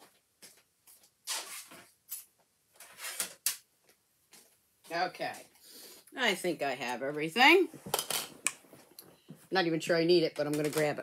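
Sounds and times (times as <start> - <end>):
craft supplies rustling and knocking: 7.7 - 9.4.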